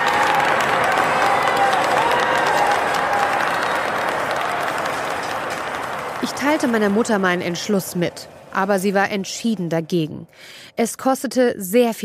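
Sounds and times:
drawn-out cheers: 0.0 - 7.6
audience applauding: 0.0 - 8.7.

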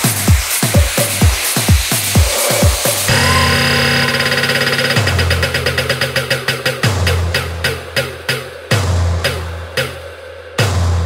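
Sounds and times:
kick drum beat: 0.0 - 3.2.

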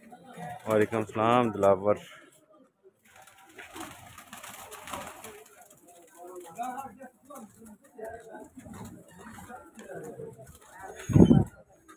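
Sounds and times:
wings flapping: 3.0 - 11.7.

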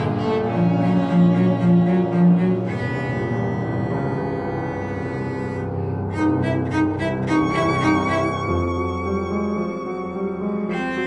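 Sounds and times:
chamber music violin cello piano: 0.0 - 11.0.

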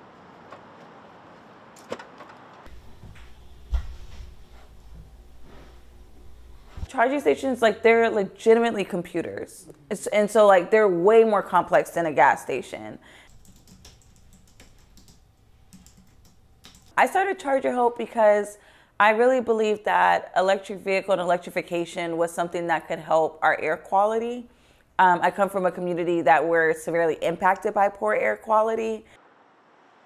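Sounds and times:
low indoor room hum: 0.0 - 30.0.

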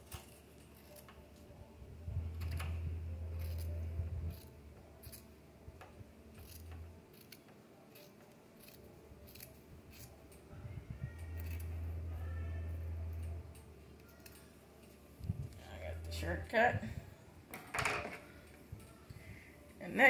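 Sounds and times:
low steady hum: 0.0 - 7.2, 9.8 - 17.5
scissors snipping fabric: 3.3 - 5.4, 6.3 - 10.4.

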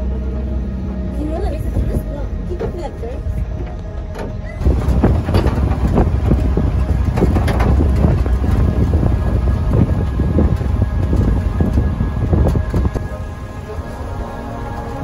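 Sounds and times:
low road rumble: 0.0 - 15.0
wind buffeting microphone: 0.4 - 15.0.

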